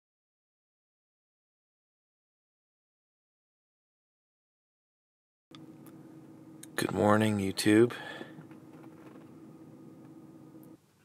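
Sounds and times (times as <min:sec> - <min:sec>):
car cabin hum: 0:05.6 - 0:10.8.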